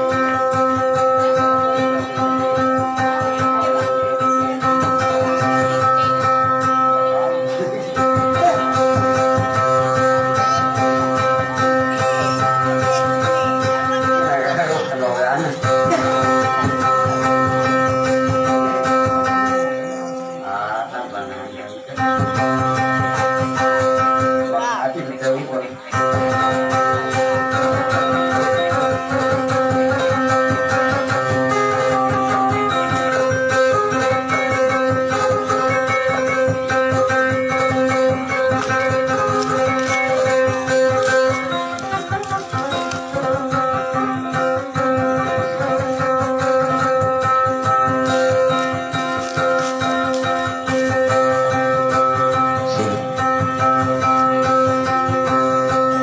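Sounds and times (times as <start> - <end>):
electric guitar plucked notes: 0.0 - 56.0.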